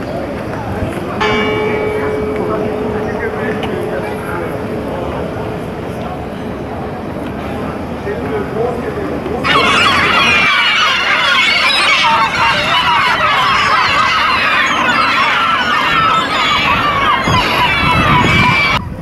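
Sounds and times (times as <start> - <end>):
murmur of town square: 0.0 - 19.0
gulls calling: 1.0 - 19.0
church bell ringing: 1.2 - 8.8, 9.4 - 18.8.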